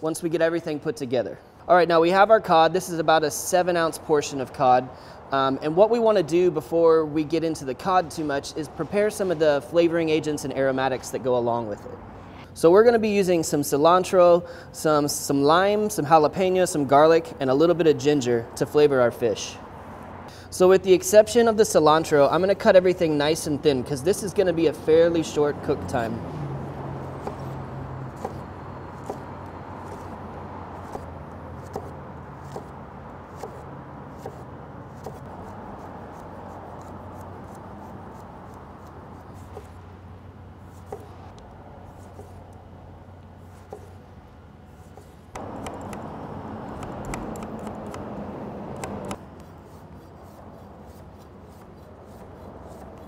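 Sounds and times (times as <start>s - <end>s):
low steady hum: 5.6s - 53.0s.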